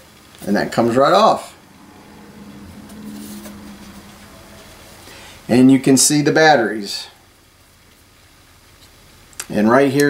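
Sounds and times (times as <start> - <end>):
higher tone: 0.8 - 6.7
faint low hum: 0.8 - 7.2.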